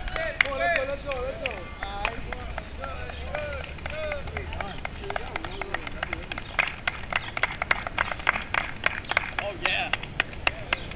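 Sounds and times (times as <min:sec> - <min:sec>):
running footsteps: 0:00.0 - 0:10.9.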